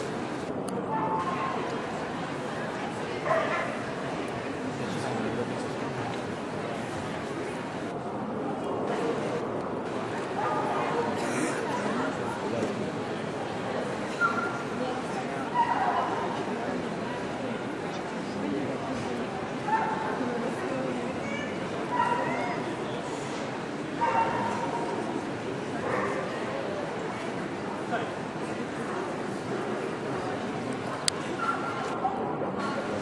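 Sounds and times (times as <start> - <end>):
crowd chatter in a large hall: 0.0 - 33.0
murmur of voices: 0.0 - 33.0
dog bark: 24.0 - 24.8.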